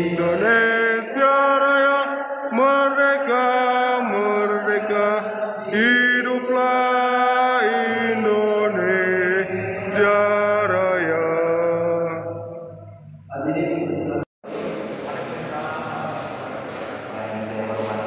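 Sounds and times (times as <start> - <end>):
man chanting over loudspeaker: 0.0 - 12.5, 13.3 - 18.0.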